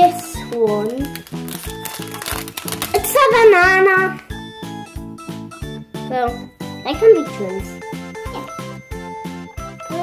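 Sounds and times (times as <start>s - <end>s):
plastic packet crinkling: 0.0s - 3.8s
music with a steady beat: 2.2s - 10.0s.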